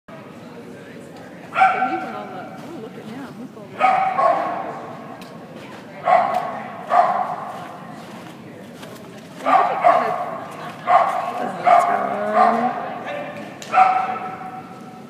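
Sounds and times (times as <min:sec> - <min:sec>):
dog barking high-pitched: 0:01.6 - 0:02.1, 0:03.8 - 0:04.7, 0:06.0 - 0:07.4, 0:09.4 - 0:14.8.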